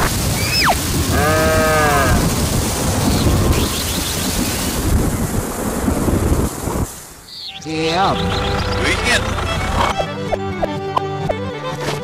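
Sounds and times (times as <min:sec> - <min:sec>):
steady rushing noise: 0:00.0 - 0:10.0
farm animal bleating: 0:01.1 - 0:02.2.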